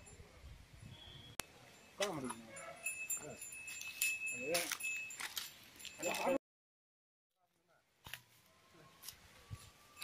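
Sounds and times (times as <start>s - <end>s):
metallic jangling clinks: 2.0s - 6.4s.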